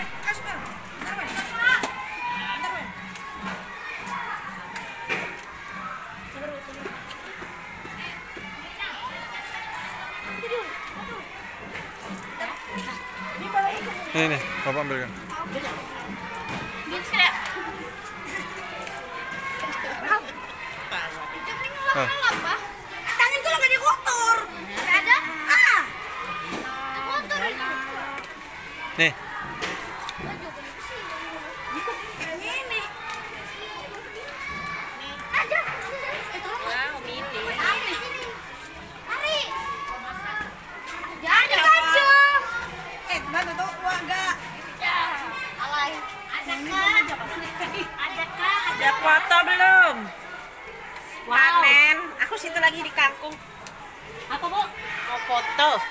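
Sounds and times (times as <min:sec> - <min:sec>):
children chattering and calling out: 0:00.0 - 0:55.9.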